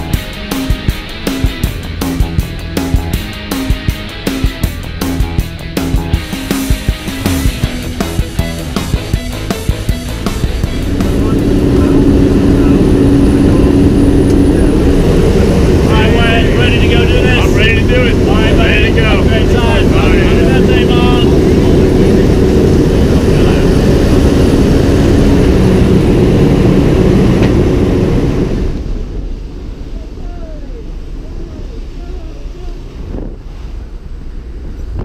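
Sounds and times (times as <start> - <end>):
low hum: 0.0 - 35.0
plane engine and propeller noise: 0.0 - 35.0.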